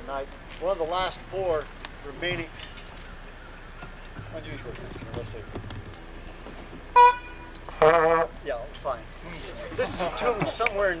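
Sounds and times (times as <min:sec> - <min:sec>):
trombone notes: 0:06.9 - 0:08.4.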